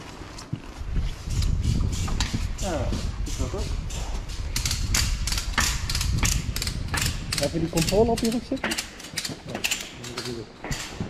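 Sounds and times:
gear clicks and knocks: 0:03.4 - 0:11.0.

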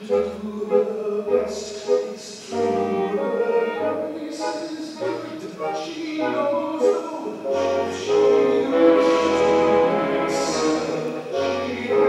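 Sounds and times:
person singing: 0:00.0 - 0:12.0
pit orchestra playing: 0:00.0 - 0:12.0.

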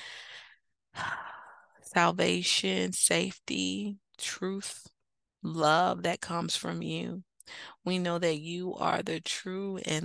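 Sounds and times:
woman breathing: 0:00.0 - 0:01.8, 0:07.4 - 0:07.8.

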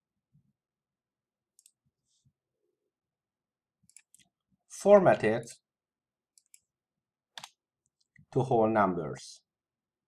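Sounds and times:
computer mouse clicks: 0:01.5 - 0:01.8, 0:03.8 - 0:04.4, 0:06.3 - 0:06.7, 0:07.4 - 0:08.3.

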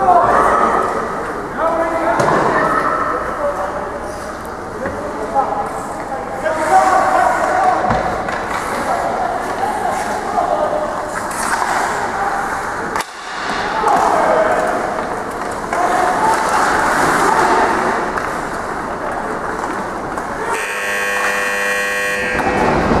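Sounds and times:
skates scraping on ice: 0:11.0 - 0:12.6
players shouting: 0:11.9 - 0:18.2
horn-like tone: 0:20.4 - 0:22.9.

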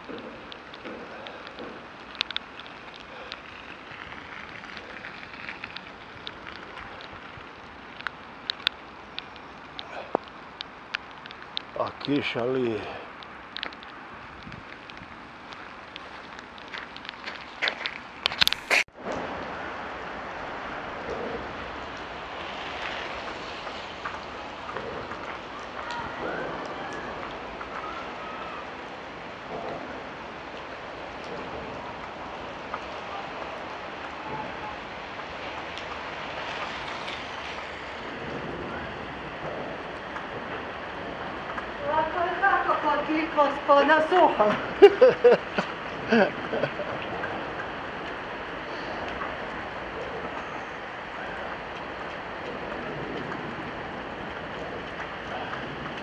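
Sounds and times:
rain falling: 0:00.0 - 0:56.0.

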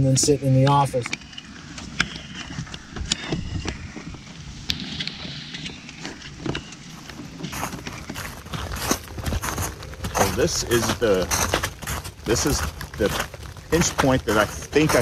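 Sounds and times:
steady low rumble: 0:00.0 - 0:15.0
bootlaces clicking and rustling: 0:01.2 - 0:15.0.

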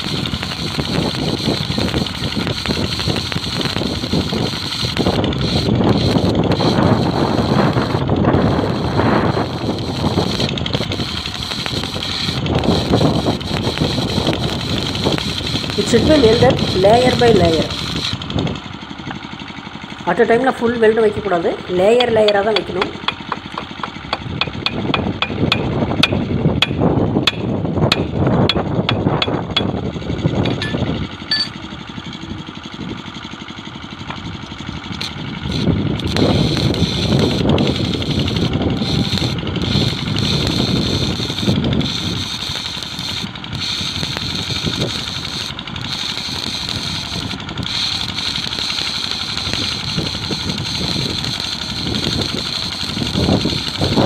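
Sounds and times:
arc welding crackling and hissing: 0:00.0 - 0:54.0.

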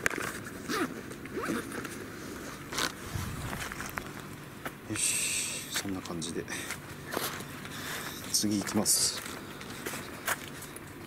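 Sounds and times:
rustling and scraping handling noise: 0:00.0 - 0:04.8.

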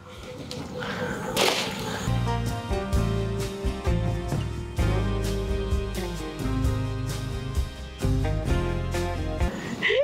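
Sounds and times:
background music with low bass: 0:02.1 - 0:10.0.

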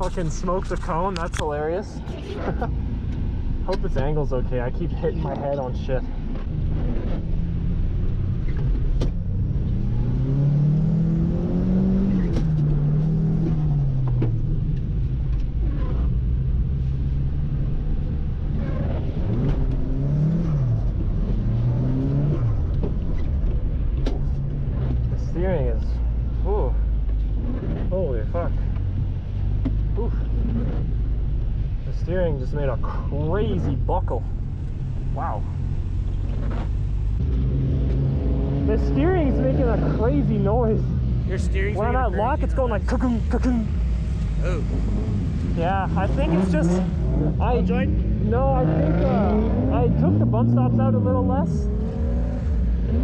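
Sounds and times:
car engine revving: 0:00.0 - 0:53.0.

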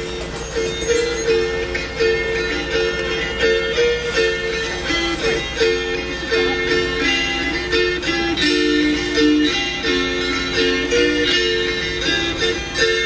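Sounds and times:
gusli strummed: 0:00.0 - 0:13.0.

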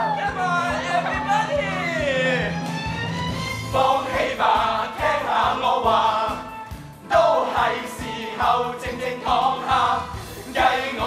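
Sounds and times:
chorus singing: 0:00.0 - 0:11.0.

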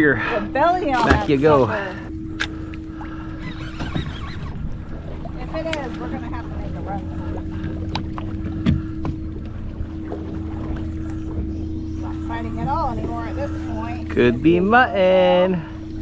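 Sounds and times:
boat engine idling: 0:00.0 - 0:16.0.

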